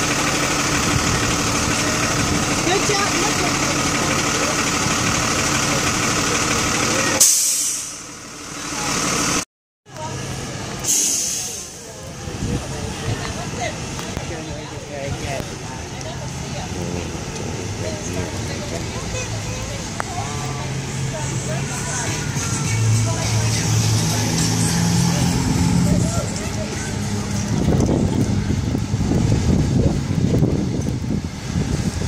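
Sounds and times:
bus engine running: 0.0s - 32.0s.

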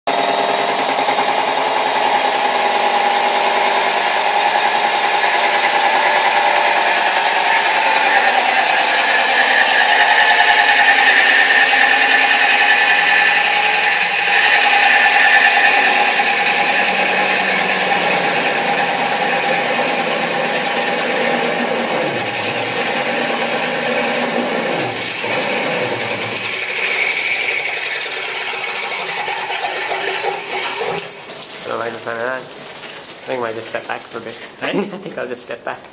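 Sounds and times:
core drill whining: 0.1s - 31.1s.

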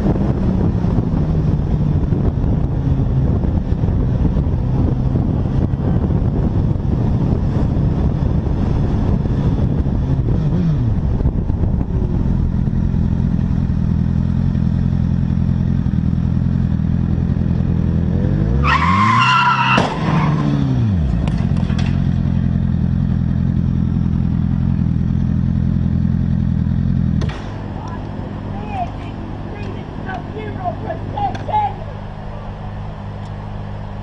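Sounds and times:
wind on microphone: 0.0s - 13.8s
motorcycle engine running: 0.0s - 18.4s, 20.5s - 34.0s
tyres squealing: 18.6s - 20.4s
car crash crack: 19.6s - 20.3s.

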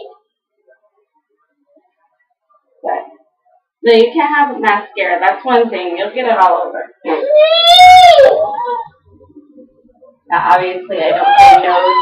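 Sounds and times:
child whining: 7.1s - 9.0s, 11.1s - 12.0s.

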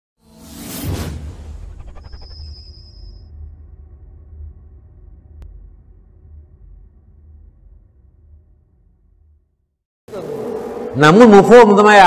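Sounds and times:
low bass drone music: 3.2s - 11.7s.

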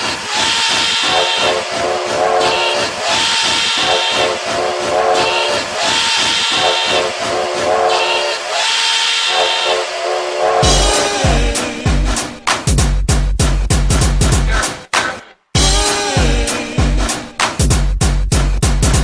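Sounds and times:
hissing whistle-like synth phrase: 0.0s - 11.6s
held synth chords: 9.4s - 12.4s.

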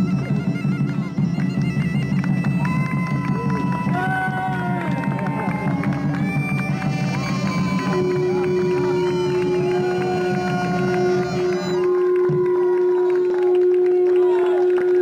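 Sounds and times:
bagpipe drone: 0.0s - 15.0s
bagpipe melody: 0.0s - 15.0s.

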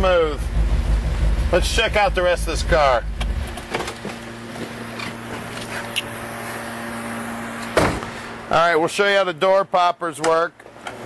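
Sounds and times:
car engine rumble: 0.0s - 8.6s
steady low hum: 0.0s - 8.8s.

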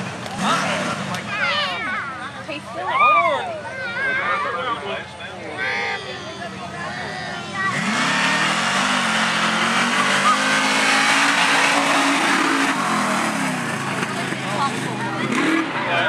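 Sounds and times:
truck engine revving hard: 0.0s - 1.4s, 7.4s - 16.0s.

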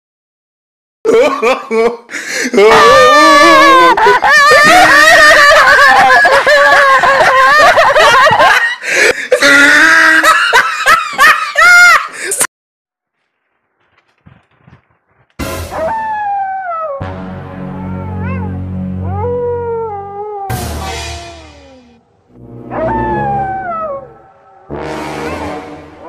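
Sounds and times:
woman cackling laugh: 3.7s - 12.5s.

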